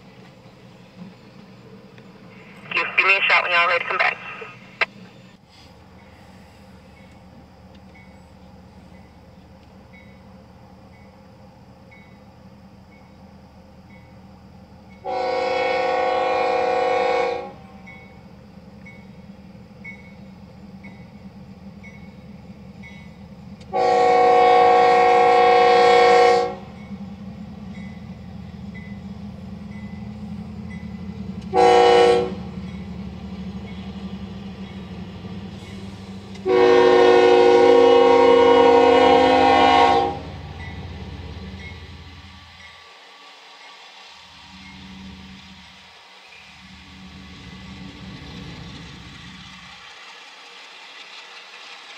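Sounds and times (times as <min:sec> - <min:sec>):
freight cars rumbling: 0:00.0 - 0:10.7
locomotive air horn blasts: 0:15.0 - 0:17.6, 0:23.7 - 0:26.7, 0:31.5 - 0:32.5, 0:36.4 - 0:40.4.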